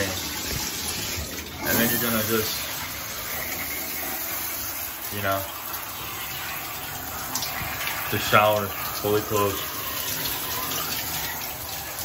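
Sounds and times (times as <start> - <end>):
shower water spraying: 0.0 - 12.0.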